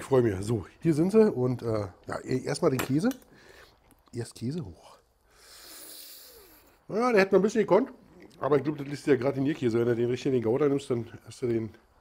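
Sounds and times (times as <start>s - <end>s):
person breathing: 3.3s - 3.8s, 5.2s - 6.9s.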